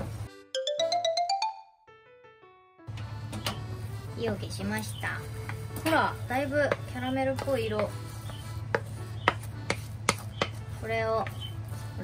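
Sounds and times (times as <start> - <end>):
spatula stirring thick caramel: 5.3 - 12.0
spatula knocking against pan: 6.6 - 10.6.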